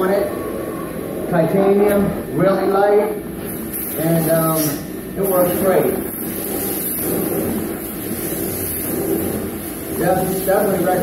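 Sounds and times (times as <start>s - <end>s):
carpet extraction vacuum rushing: 4.0s - 11.0s.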